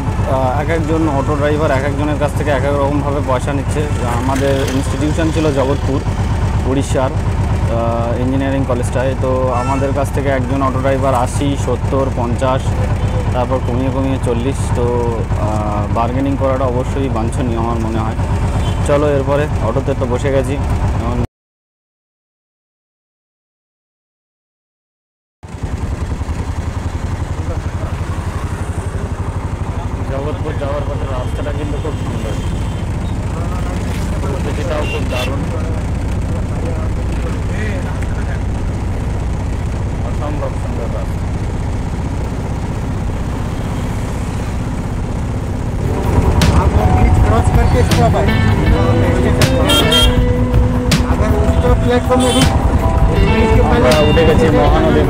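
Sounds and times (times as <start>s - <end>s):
horns honking: 0.0s - 6.6s, 9.4s - 11.3s, 18.4s - 19.2s, 28.1s - 36.3s, 45.8s - 55.0s
road noise: 0.0s - 21.2s, 25.4s - 55.0s
voices: 0.0s - 21.2s, 27.2s - 43.1s, 45.8s - 55.0s
auto-rickshaw engine running: 0.0s - 21.3s, 25.4s - 55.0s
street traffic: 0.0s - 21.3s, 25.4s - 55.0s.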